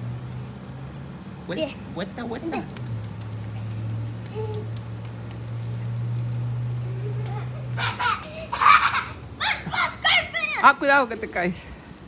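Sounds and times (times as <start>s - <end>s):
child laughing: 6.8s - 10.7s
child shouting: 7.0s - 10.7s.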